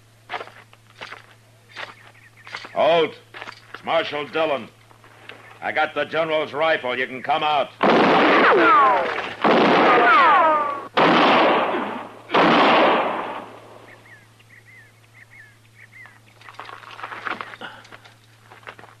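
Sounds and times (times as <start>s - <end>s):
gunshots with echoing tail: 7.8s - 13.9s
ricochet whine: 7.8s - 14.4s.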